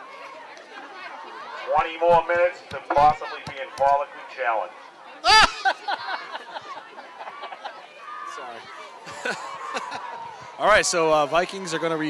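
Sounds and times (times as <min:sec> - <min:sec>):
crowd chatter: 0:00.0 - 0:12.0
loud voices shouting: 0:02.8 - 0:12.0.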